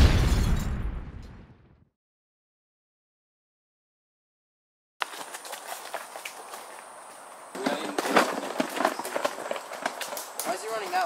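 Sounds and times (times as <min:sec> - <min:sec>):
footsteps crunching dry leaves: 0:05.0 - 0:11.0
twigs snapping: 0:09.7 - 0:11.0.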